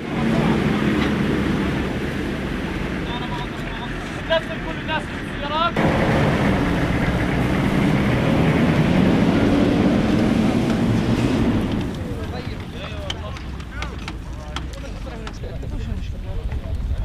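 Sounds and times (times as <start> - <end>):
diesel engine driving past: 0.0 - 13.0
tyres on gravel: 0.0 - 17.0.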